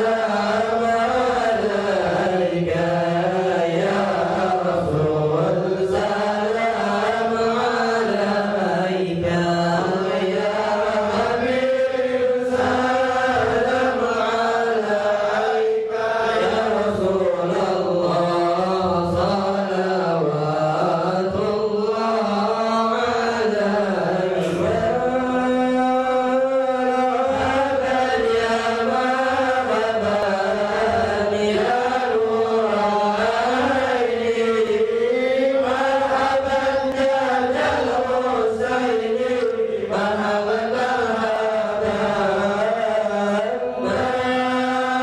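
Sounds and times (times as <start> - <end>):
men chanting a devotional song: 0.0 - 45.0.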